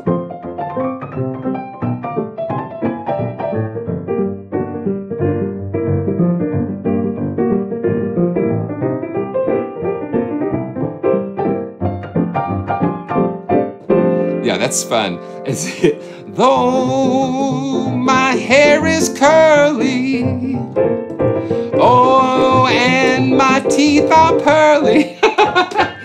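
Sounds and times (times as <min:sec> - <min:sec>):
upbeat piano through radio speaker: 0:00.0 - 0:26.0.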